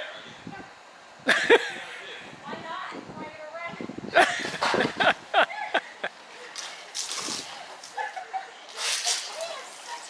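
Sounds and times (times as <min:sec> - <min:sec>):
water blasters spraying: 0:08.7 - 0:10.0.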